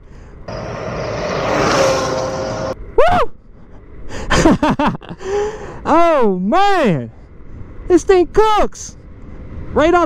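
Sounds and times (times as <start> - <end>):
man laughing: 4.2 - 5.5.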